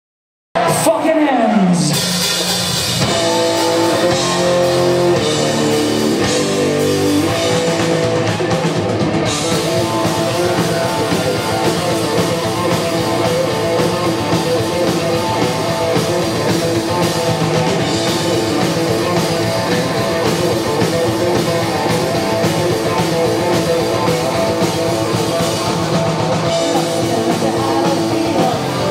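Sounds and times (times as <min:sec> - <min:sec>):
distorted electric guitar riff: 0:00.6 - 0:28.9
drum kit: 0:00.6 - 0:28.9.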